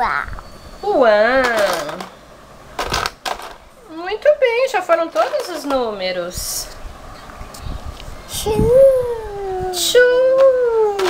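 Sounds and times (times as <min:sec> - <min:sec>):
toy pieces clicking and clattering: 0:01.4 - 0:02.2.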